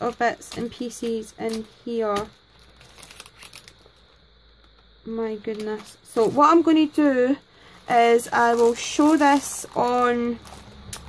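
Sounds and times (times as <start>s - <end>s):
cellophane crinkling: 0.0s - 7.0s, 7.6s - 11.0s.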